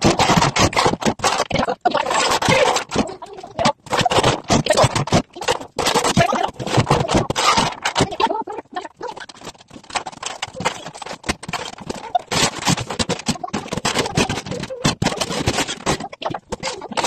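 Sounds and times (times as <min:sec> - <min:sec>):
plastic toys clattering: 0:00.0 - 0:17.0.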